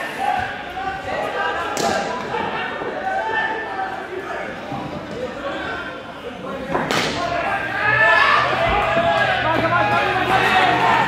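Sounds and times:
players' voices: 0:00.0 - 0:11.0.

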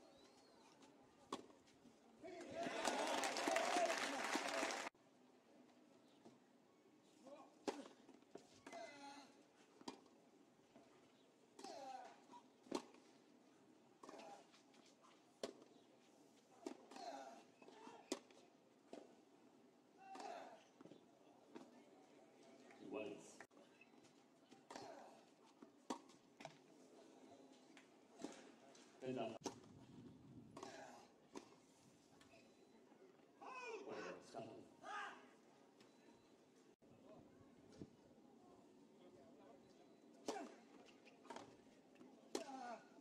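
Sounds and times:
faint tennis court ambience: 0:00.0 - 0:43.0.

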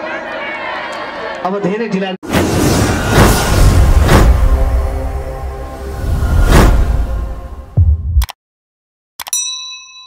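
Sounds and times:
whoosh: 0:02.3 - 0:08.2
notification bell ding: 0:09.2 - 0:10.0.

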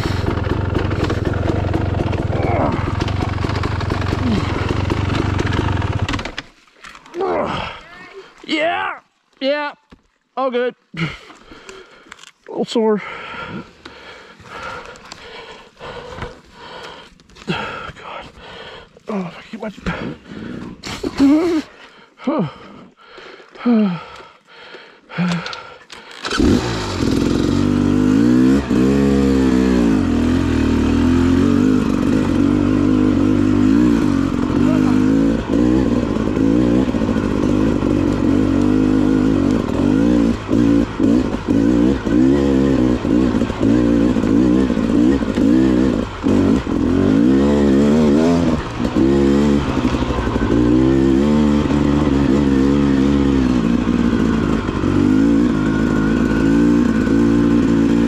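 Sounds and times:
dirt bike engine revving: 0:00.0 - 0:06.4, 0:26.2 - 0:58.0.

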